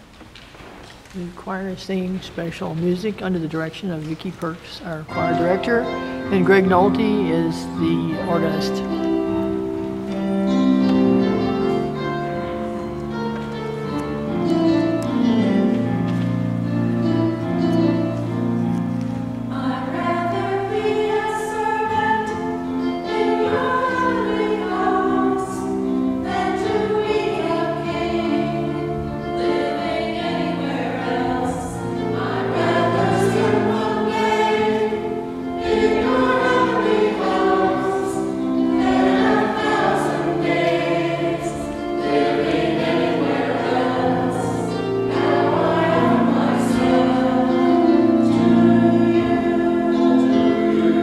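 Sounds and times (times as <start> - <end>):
church choir singing: 5.1 - 51.0.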